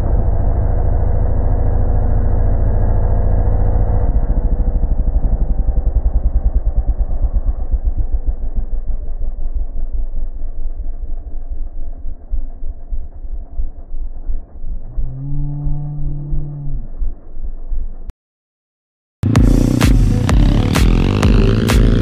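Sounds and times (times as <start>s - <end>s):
slowed engine idling throb: 0.0s - 18.1s, 19.2s - 22.0s.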